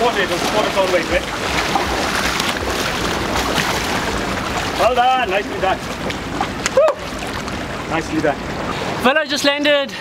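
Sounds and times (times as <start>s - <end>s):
sea water splashing on rocks: 0.0s - 8.7s.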